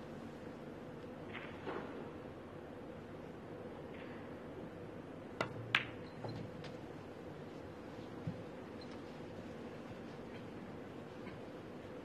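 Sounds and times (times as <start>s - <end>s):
pool balls clicking: 5.4s - 6.4s.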